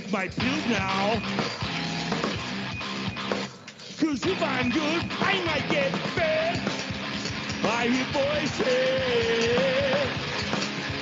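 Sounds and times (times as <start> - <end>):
drums and cymbals hitting: 0.0 - 11.0
live rock band playing: 0.4 - 11.0.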